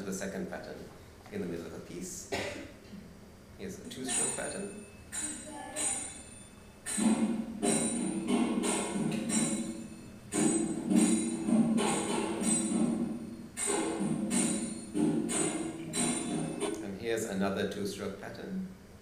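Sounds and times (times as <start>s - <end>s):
drumming with jingling bells: 3.9s - 16.8s.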